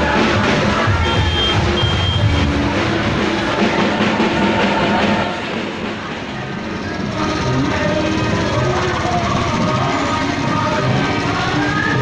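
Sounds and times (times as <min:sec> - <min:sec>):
music playing: 0:00.0 - 0:12.0
scattered voices: 0:00.0 - 0:12.0
vehicle engine noise: 0:00.0 - 0:12.0.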